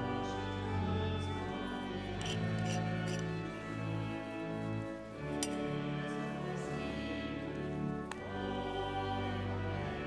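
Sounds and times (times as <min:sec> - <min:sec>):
church organ chords: 0:00.0 - 0:10.0.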